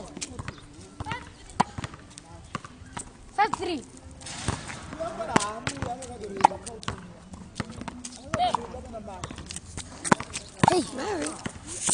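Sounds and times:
tennis balls bouncing: 0.0s - 11.9s
tennis balls struck by rackets: 0.0s - 11.9s.

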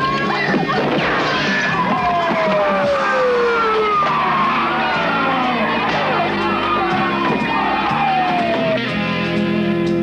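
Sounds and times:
dramatic music: 1.0s - 9.7s.

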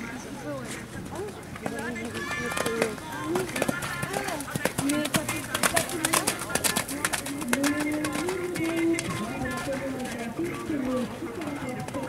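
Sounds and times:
people talking: 0.0s - 12.0s
pony hoofbeats on sand: 0.8s - 12.0s.

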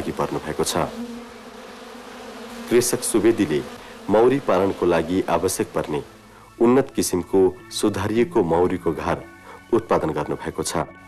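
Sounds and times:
honeybees buzzing: 0.0s - 10.4s.

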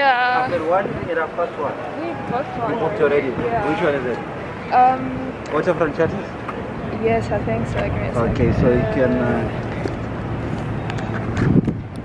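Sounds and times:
outdoor background noise: 0.0s - 12.0s
wind rumbling on microphone: 0.0s - 12.0s.

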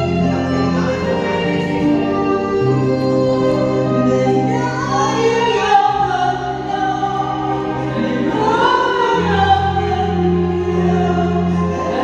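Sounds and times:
backing music with low notes: 0.0s - 12.0s
women singing into microphones: 0.0s - 12.0s.

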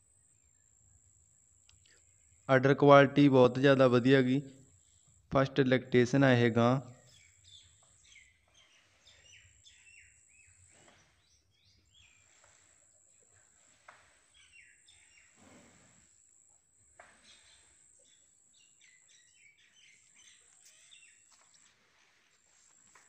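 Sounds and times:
faint birds chirping: 0.0s - 23.0s.

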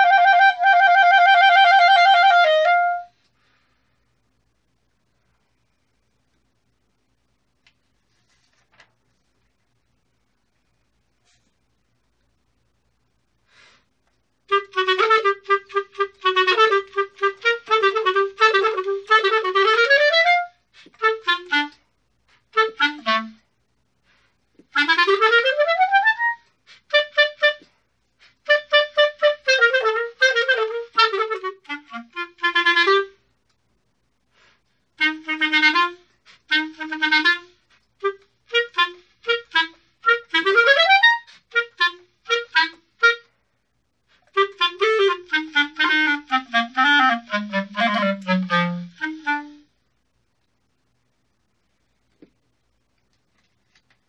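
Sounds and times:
solo clarinet playing: 0.0s - 3.2s, 14.5s - 21.9s, 22.5s - 23.4s, 24.6s - 33.2s, 35.0s - 43.3s, 44.1s - 49.8s.

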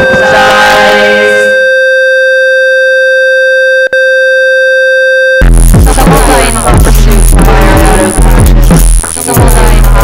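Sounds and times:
fainter lower tone: 0.0s - 5.4s
loud steady electronic tone: 0.0s - 10.0s
electronic industrial music: 5.4s - 10.0s.

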